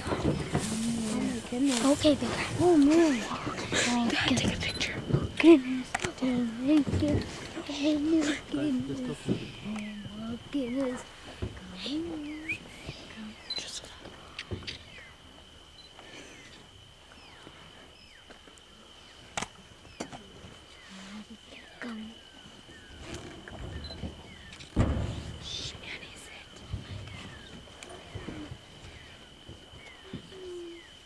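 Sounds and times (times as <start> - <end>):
elephant rustling and crunching brush: 0.0 - 3.9, 22.4 - 25.7
high-pitched insect drone: 0.0 - 31.0
loud thump: 23.6 - 25.7.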